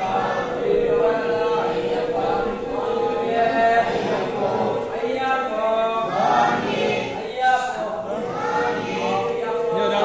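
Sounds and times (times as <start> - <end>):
group singing a chant: 0.0 - 10.0.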